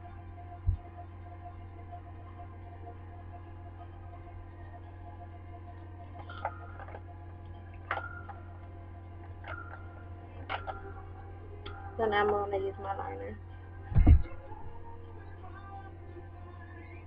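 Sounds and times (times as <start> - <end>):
steady low hum: 0.0 - 17.0.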